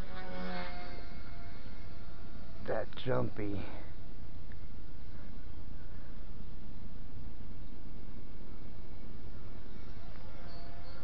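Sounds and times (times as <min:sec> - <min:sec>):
toy helicopter rotors whining: 0:00.0 - 0:02.6.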